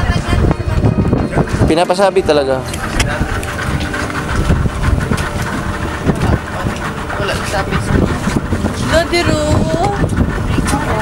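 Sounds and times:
motorboat engine running: 0:00.0 - 0:11.0
voices: 0:00.0 - 0:11.0
wind rumbling on microphone: 0:00.0 - 0:11.0.

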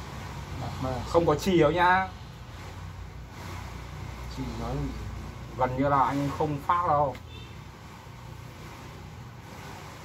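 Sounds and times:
outdoor background rumble and hiss: 0:00.0 - 0:10.0.

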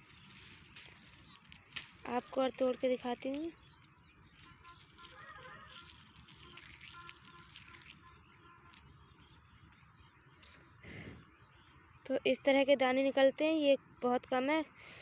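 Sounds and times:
dry seed pods crackling: 0:00.0 - 0:10.1.

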